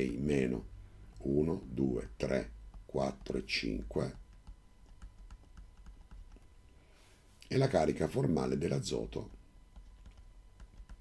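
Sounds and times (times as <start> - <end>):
stylus tapping on tablet: 4.0 - 6.5, 9.7 - 11.0.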